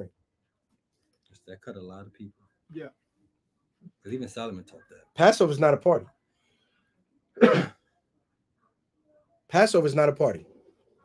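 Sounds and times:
man clearing throat: 7.4s - 7.8s.

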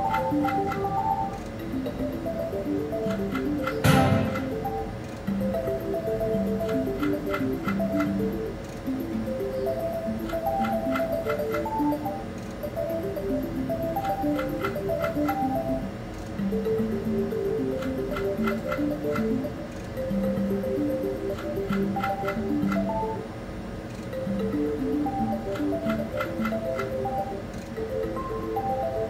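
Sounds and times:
reels ticking to a stop: 0.0s - 23.2s, 23.9s - 29.0s
chiming slot machine melody: 0.0s - 23.4s, 24.1s - 29.0s.

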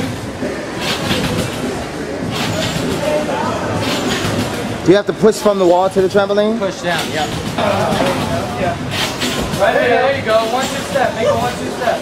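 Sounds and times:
gym background noise: 0.0s - 12.0s.

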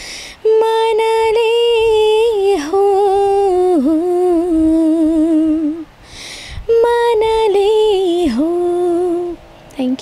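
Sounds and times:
woman singing unaccompanied: 0.3s - 10.0s.

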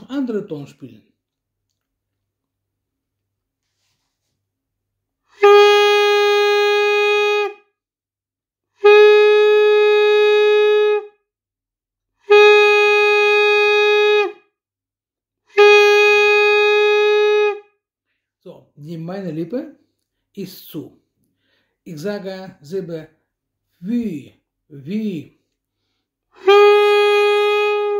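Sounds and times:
saxophone mouthpiece long notes: 5.3s - 7.7s, 8.8s - 11.2s, 12.2s - 14.5s, 15.5s - 17.7s, 24.8s - 27.9s.

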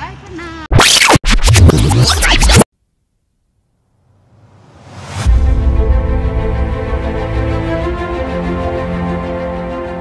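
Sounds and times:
scratchy glitch sound effect: 0.7s - 2.7s.

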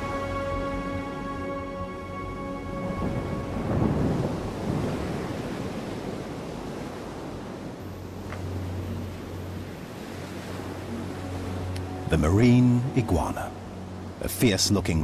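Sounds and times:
rush of water and spray: 2.8s - 15.0s
surf crashing on rocks: 2.8s - 15.0s.

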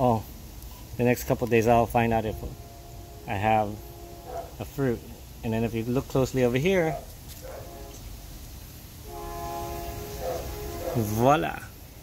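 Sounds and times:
train horn chord: 1.8s - 6.4s, 7.4s - 8.2s, 9.0s - 11.5s.

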